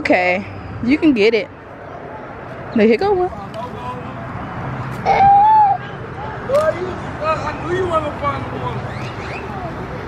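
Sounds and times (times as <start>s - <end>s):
high-pitched voice calling out: 5.1s - 5.8s.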